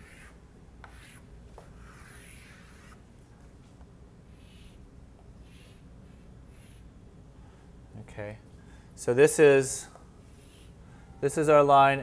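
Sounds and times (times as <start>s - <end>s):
chalk scraping on blackboard: 0.0s - 3.0s, 5.4s - 6.9s
chalk tapping: 0.0s - 3.0s.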